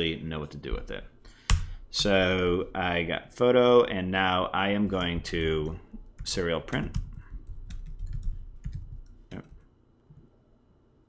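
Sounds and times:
computer keyboard typing: 5.0 - 9.6.

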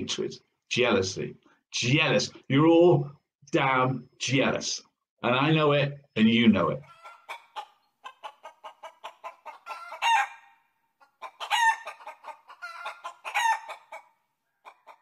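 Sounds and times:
chicken clucking: 6.8 - 15.0
chicken squawking: 6.8 - 15.0.

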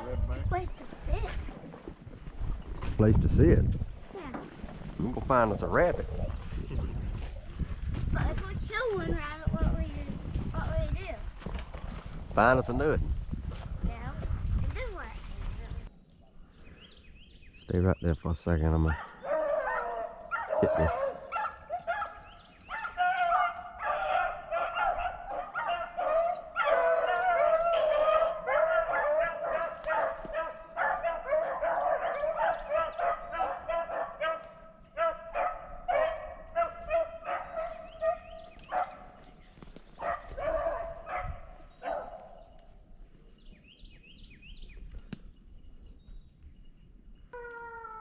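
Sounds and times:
hunting dogs baying and yelping: 18.8 - 42.7.

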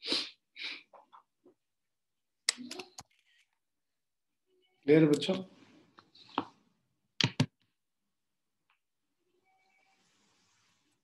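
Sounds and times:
person's sharp breath bursts: 0.0 - 0.9.

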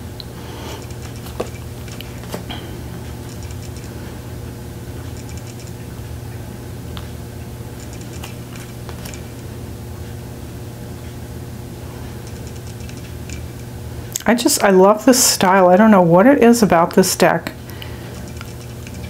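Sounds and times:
air conditioner humming: 0.0 - 19.0
cards clicking and sliding: 0.8 - 2.5.

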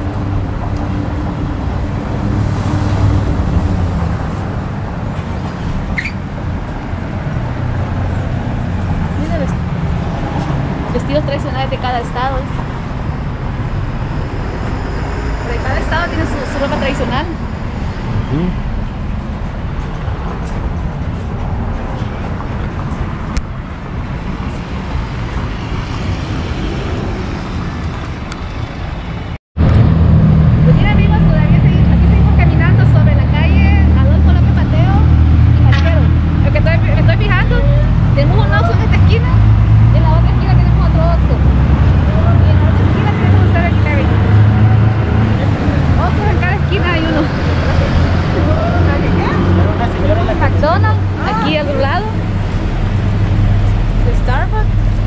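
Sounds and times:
heavy low engine rumble: 0.0 - 55.0
road traffic: 0.0 - 55.0
people talking: 9.2 - 9.6, 10.9 - 12.5, 15.4 - 17.4, 18.3 - 18.6, 30.6 - 41.5, 42.1 - 52.2, 54.0 - 54.7.

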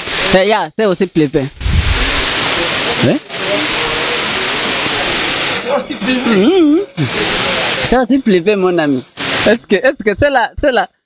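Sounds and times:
loud background hiss: 0.0 - 10.4.

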